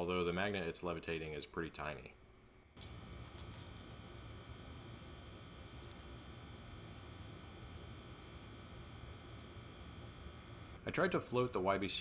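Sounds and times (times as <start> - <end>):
thin high whine: 2.6 - 12.0.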